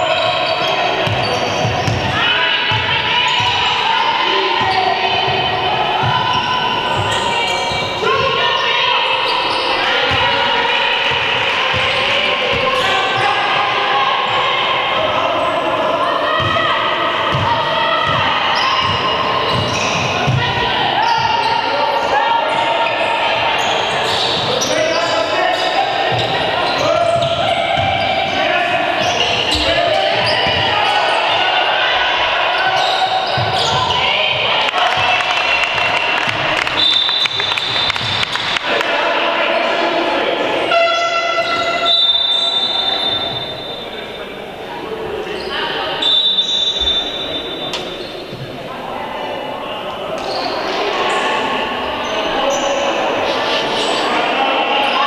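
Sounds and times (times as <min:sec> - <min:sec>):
players calling out: 0:00.0 - 0:55.0
ball bouncing on wooden court: 0:01.0 - 0:03.6, 0:17.3 - 0:20.6
referee's whistle: 0:36.7 - 0:38.3, 0:40.7 - 0:44.0, 0:46.0 - 0:47.9
horn-like buzzer: 0:40.7 - 0:41.6.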